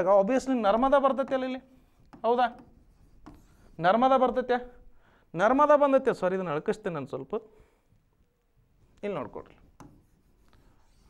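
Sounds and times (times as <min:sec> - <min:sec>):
man lecturing: 0:00.0 - 0:02.8, 0:03.7 - 0:07.6, 0:09.0 - 0:09.7
stylus writing on touchscreen: 0:00.1 - 0:04.8, 0:09.0 - 0:11.0.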